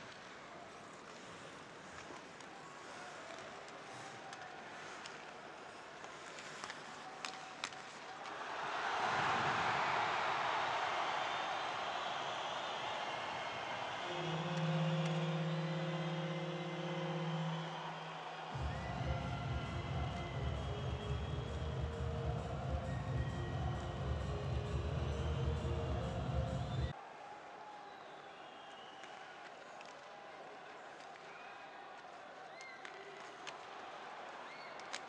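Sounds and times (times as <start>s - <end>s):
crowd roaring: 8.2s - 27.6s
arena goal horn: 13.7s - 26.8s
arena music with pulsing beat: 18.6s - 26.9s.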